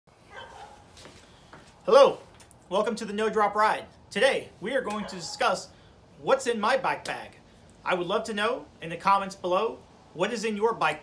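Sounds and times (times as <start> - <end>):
man calling out greeting: 1.8 - 11.0.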